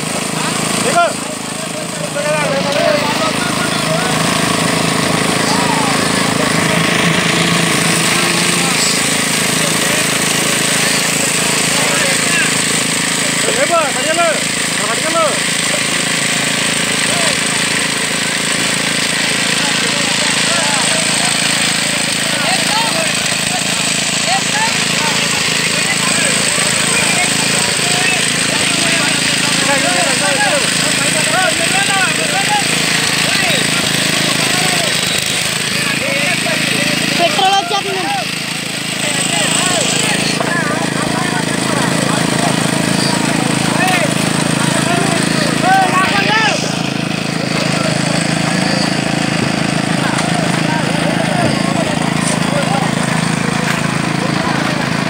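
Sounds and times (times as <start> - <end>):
machinery engine running: 0.0 - 55.0
workers calling out: 0.0 - 55.0.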